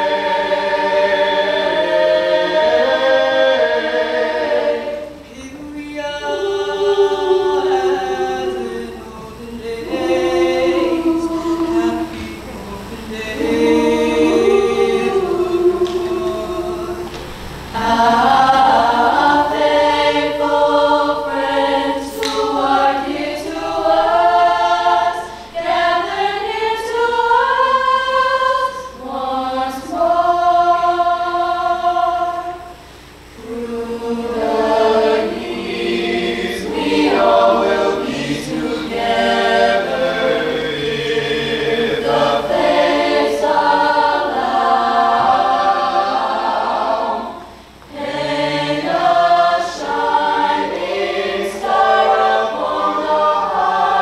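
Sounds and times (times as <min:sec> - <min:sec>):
choir singing in harmony: 0:00.0 - 0:54.0.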